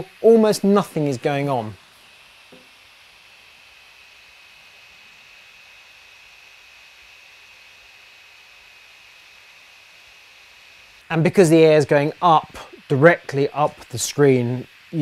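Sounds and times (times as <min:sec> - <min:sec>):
laptop cooling fans whirring: 0:00.0 - 0:15.0.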